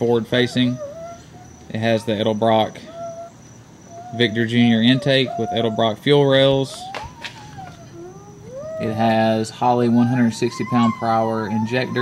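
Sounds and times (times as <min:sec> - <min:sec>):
faint animal cries: 0:00.0 - 0:12.0.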